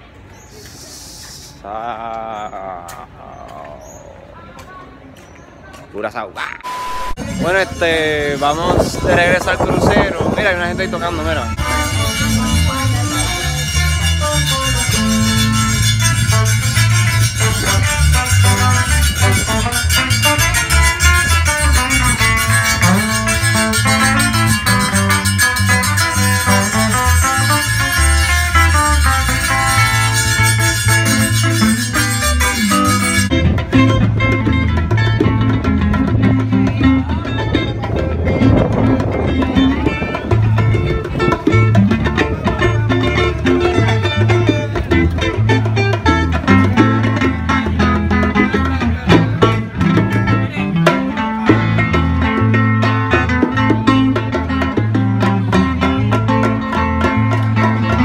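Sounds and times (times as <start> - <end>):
guitar: 0.0 - 58.0
repeating bass line: 6.4 - 58.0.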